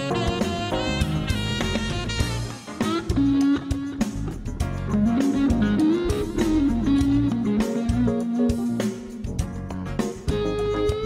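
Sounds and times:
electric guitar melody: 0:00.0 - 0:11.0
live band playing: 0:00.0 - 0:11.0.

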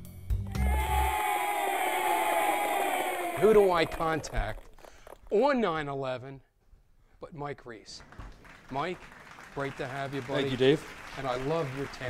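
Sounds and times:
voices singing long note: 0:00.5 - 0:04.2.

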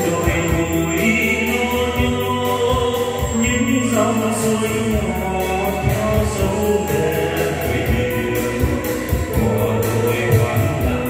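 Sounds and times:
backing track with steady beat: 0:00.0 - 0:11.0
man singing into a microphone: 0:00.0 - 0:11.0.

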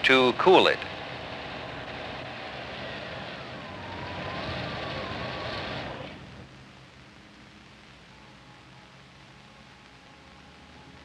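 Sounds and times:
high whine sliding down: 0:00.0 - 0:09.0
car engine and road noise: 0:00.0 - 0:11.0.

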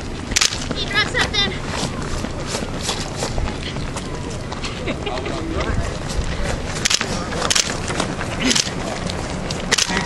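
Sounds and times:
footfalls on asphalt: 0:00.0 - 0:10.0
sharp crack: 0:00.3 - 0:00.8, 0:06.8 - 0:07.8, 0:08.4 - 0:10.0.

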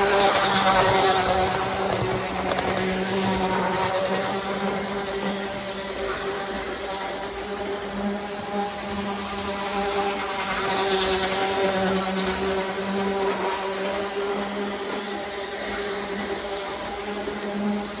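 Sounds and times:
toy train motor buzzing: 0:00.0 - 0:18.0
wheels rumbling on metal track: 0:00.0 - 0:18.0.

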